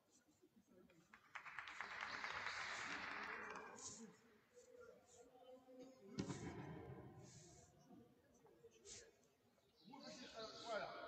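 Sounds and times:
crowd applause: 1.3 - 4.0.

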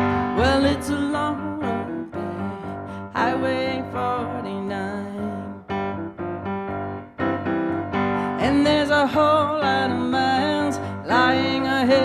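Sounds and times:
person singing: 0.0 - 5.7, 8.2 - 12.0
piano held chords: 0.0 - 12.0.

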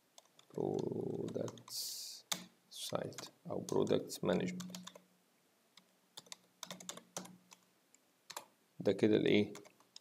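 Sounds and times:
computer keyboard typing: 0.2 - 5.1, 5.8 - 7.7, 8.3 - 8.5, 9.5 - 10.0.

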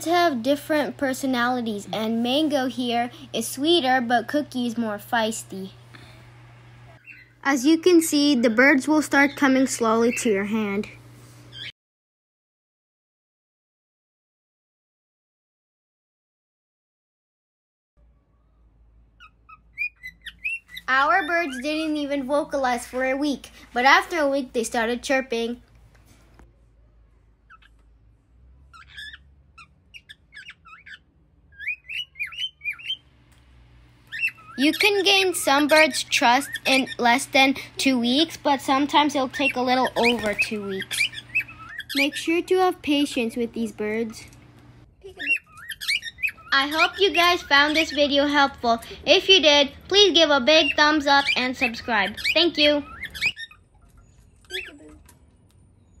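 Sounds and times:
cockatiels chirping: 7.0 - 7.4, 11.5 - 11.7, 19.2 - 22.2, 27.5 - 27.8, 28.7 - 33.0, 34.0 - 37.5, 38.2 - 44.3, 45.0 - 49.0, 49.9 - 55.2
whistled bird notes: 50.6 - 55.0.

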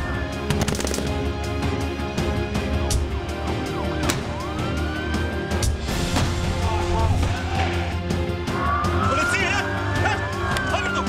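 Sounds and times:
siren sweeping up and down: 3.5 - 5.6.

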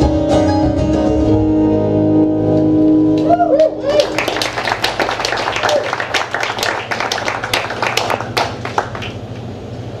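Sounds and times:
small audience clapping: 3.2 - 9.5.

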